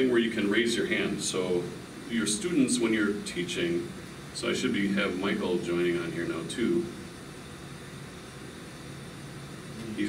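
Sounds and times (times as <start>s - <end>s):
even hiss: 0.0s - 7.2s, 9.4s - 10.0s
faint low hum: 0.0s - 10.0s.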